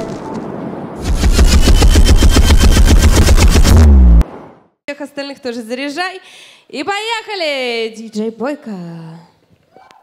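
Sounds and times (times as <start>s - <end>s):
bass-heavy drum roll: 1.0s - 4.2s
falling pitch drop: 1.0s - 4.2s.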